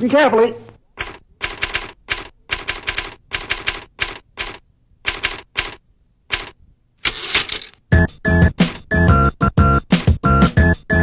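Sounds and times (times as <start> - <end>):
typewriter typing: 1.0 - 7.8.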